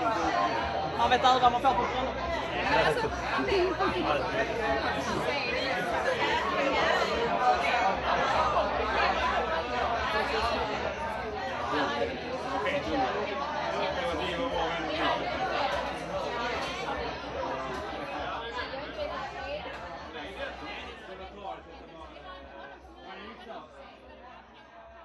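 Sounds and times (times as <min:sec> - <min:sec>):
crowd conversation hubbub: 0:00.0 - 0:25.0.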